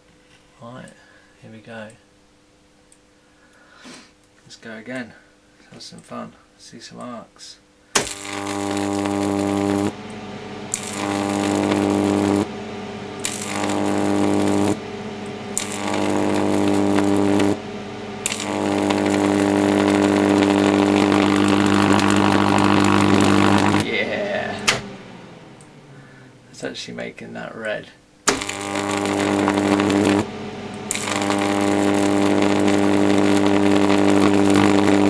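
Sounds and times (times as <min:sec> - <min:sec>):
sharp electric crack: 0:07.9 - 0:10.1, 0:10.7 - 0:12.6, 0:13.2 - 0:25.8, 0:28.2 - 0:35.0
electric arc buzzing and crackling: 0:07.9 - 0:26.8, 0:27.4 - 0:35.0.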